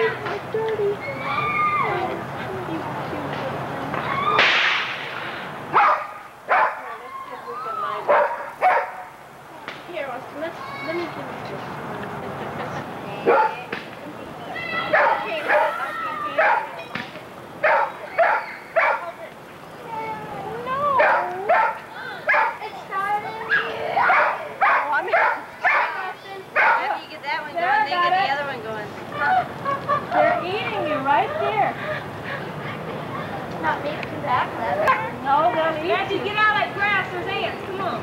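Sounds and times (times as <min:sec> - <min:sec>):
people shouting and calling: 0:00.0 - 0:02.3, 0:03.9 - 0:05.0, 0:14.4 - 0:17.0, 0:19.8 - 0:27.9.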